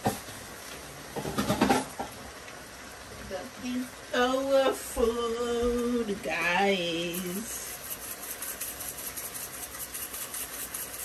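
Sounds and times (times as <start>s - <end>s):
food sizzling in a pot: 0.0s - 11.0s
woman humming: 3.7s - 7.6s.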